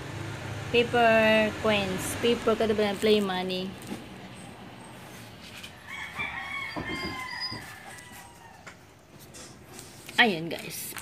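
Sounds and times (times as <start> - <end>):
rooster crowing: 5.6 - 9.0.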